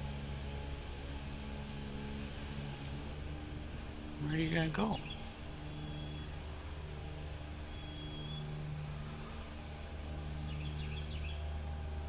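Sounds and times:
low mechanical hum: 0.0s - 12.0s
bird chirps: 4.4s - 6.4s, 7.6s - 11.5s.

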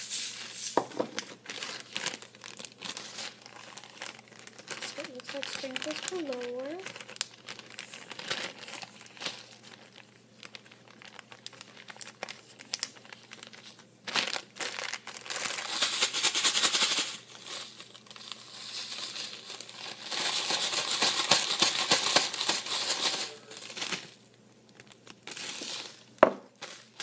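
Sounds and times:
plastic bag crinkling: 0.8s - 27.0s.

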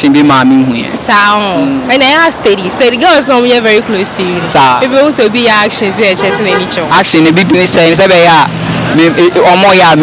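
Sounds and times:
road traffic passing: 0.0s - 10.0s.

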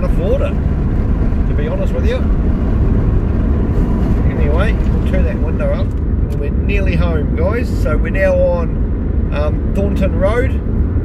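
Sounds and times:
tyre and wind noise in car cabin: 0.0s - 11.0s.

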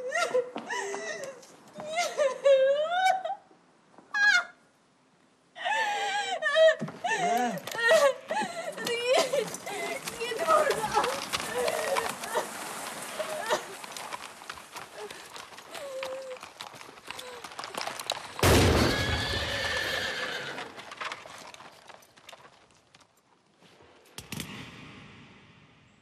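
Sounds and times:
hoofbeats clattering: 7.2s - 23.2s
horse whinny: 18.4s - 21.0s.

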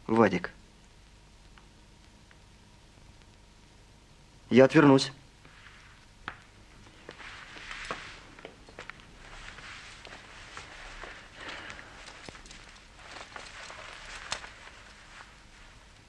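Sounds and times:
footsteps: 5.4s - 15.8s
clothes rustling: 5.4s - 16.0s.

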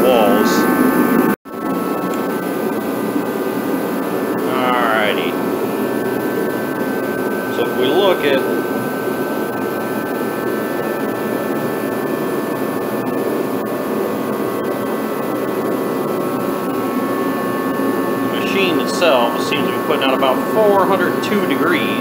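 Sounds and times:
heater fan and burner roar: 0.0s - 22.0s
high tones: 0.0s - 22.0s
man's voice: 4.5s - 5.4s, 7.6s - 8.5s, 18.4s - 22.0s.

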